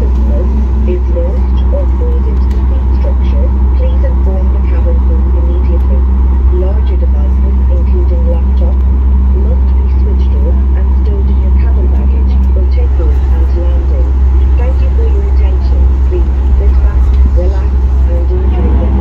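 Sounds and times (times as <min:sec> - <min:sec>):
airliner cabin rumble: 0:00.0 - 0:19.0
murmur of passengers' voices: 0:00.0 - 0:19.0
steady hum: 0:00.0 - 0:19.0.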